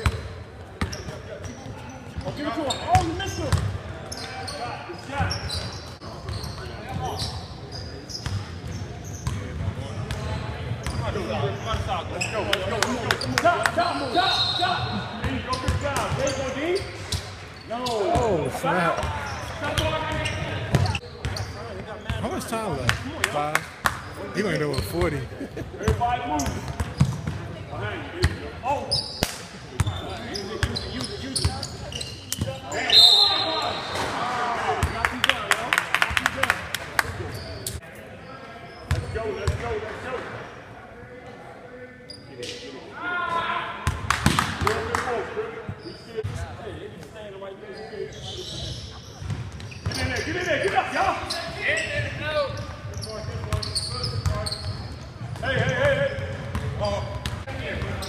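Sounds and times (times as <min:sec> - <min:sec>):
players' voices: 0:00.2 - 0:58.0.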